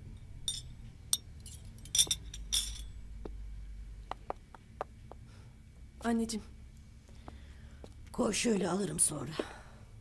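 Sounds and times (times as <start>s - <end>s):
glasses and crockery clinking: 0.5s - 2.9s.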